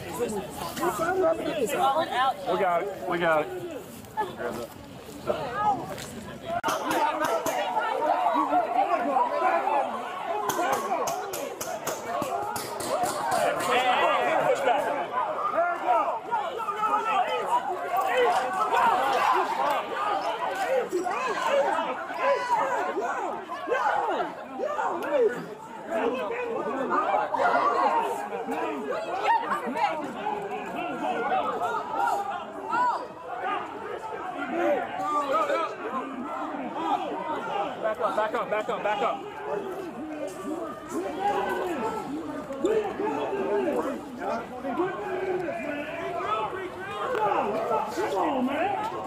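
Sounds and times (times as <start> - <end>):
crowd voices talking: 0.0 - 49.0.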